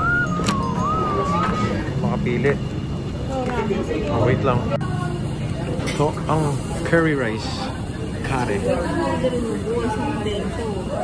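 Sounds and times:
background music: 0:00.0 - 0:02.0
indistinct voices talking: 0:00.0 - 0:05.6.

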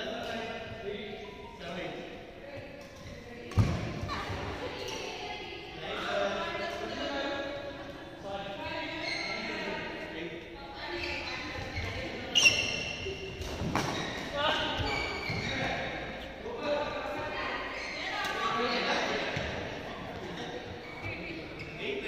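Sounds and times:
rackets hitting shuttlecock: 0:02.8 - 0:04.1, 0:12.8 - 0:14.8.

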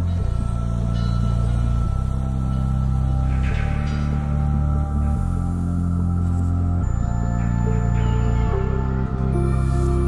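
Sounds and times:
deep sustained bass music: 0:00.0 - 0:10.0.

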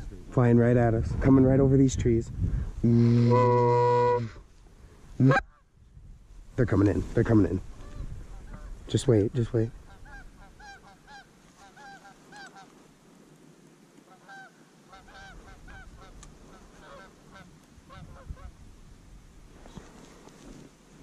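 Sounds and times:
geese honking: 0:09.8 - 0:12.8, 0:14.0 - 0:18.5.

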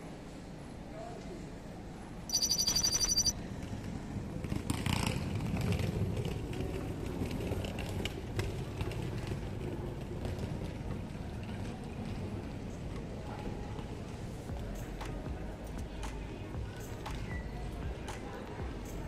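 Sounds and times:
street background noise: 0:00.0 - 0:19.0
bicycle bell ringing: 0:02.3 - 0:03.3.

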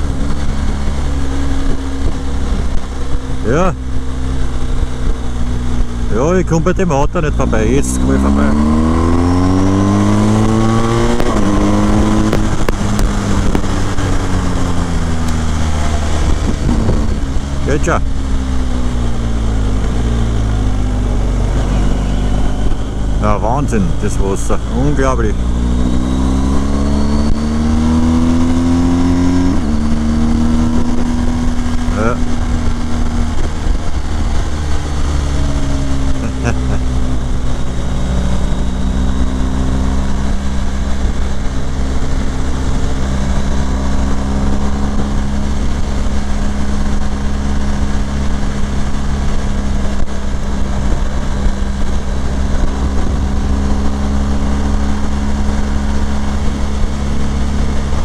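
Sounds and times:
motorcycle engine revving: 0:00.0 - 0:58.0
wind rushing over microphone: 0:07.3 - 0:58.0.

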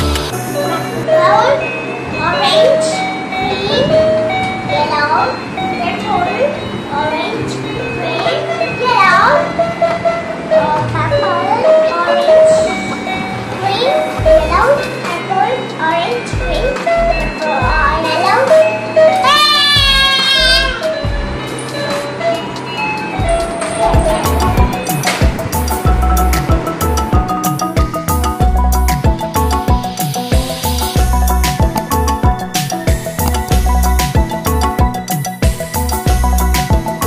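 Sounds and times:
low electronic beat: 0:00.0 - 0:01.0, 0:14.2 - 0:14.8, 0:19.7 - 0:22.1, 0:23.2 - 0:37.0
toy guitar beeping notes: 0:00.0 - 0:37.0
child's voice: 0:00.7 - 0:01.6, 0:02.2 - 0:04.0, 0:04.7 - 0:09.5, 0:10.6 - 0:12.7, 0:13.6 - 0:16.8, 0:17.5 - 0:18.6, 0:19.2 - 0:20.9.

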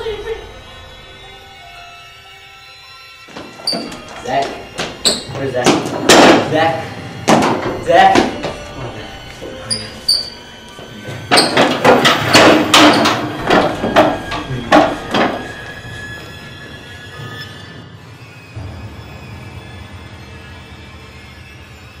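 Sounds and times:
music with long held tones: 0:00.0 - 0:22.0
metal chair banging and clattering: 0:03.3 - 0:08.9, 0:09.7 - 0:15.7.

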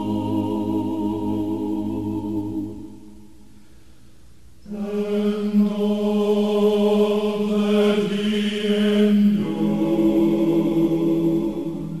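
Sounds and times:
vocal group singing chord: 0:00.0 - 0:03.6, 0:04.6 - 0:12.0.

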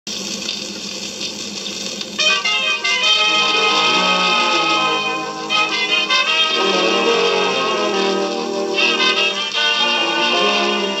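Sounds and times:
record surface hiss: 0:00.1 - 0:11.0.

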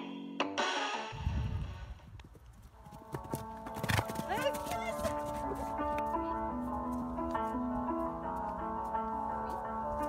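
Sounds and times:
background music: 0:00.0 - 0:02.0, 0:02.7 - 0:10.0
wind rumble on microphone: 0:01.2 - 0:02.9
horse hooves clopping on turf: 0:02.0 - 0:10.0.

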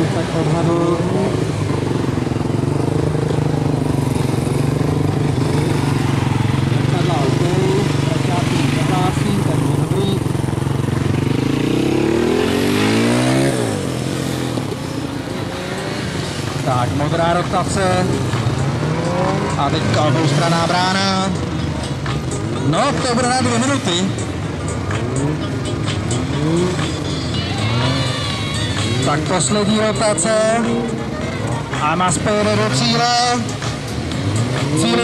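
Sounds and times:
motorcycle engine running: 0:00.0 - 0:35.0.

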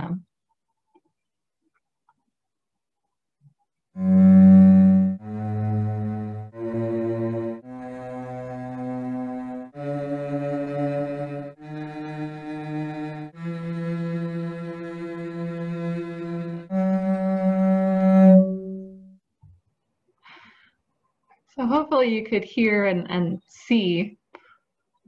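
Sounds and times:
sustained string-like scale tones: 0:04.0 - 0:19.1.

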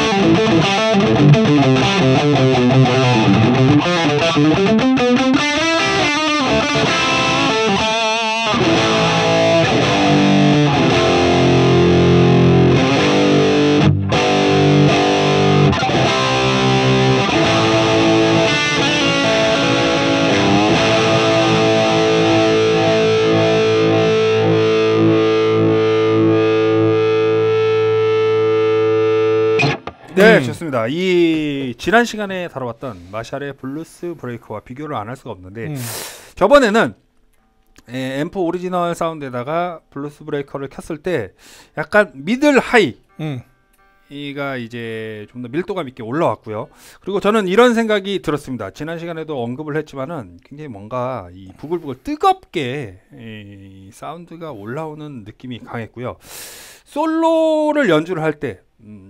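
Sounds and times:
overdriven electric guitar lead: 0:00.0 - 0:30.6.

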